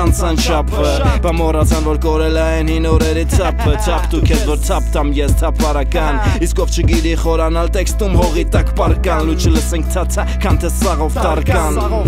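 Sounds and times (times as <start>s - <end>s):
man rapping over hip-hop beat: 0.0s - 12.0s.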